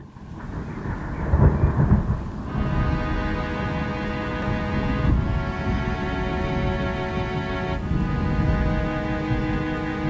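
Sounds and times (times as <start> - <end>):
steady rain: 0.0 - 10.0
thunder rumbling: 0.0 - 10.0
held synth chord: 2.5 - 10.0.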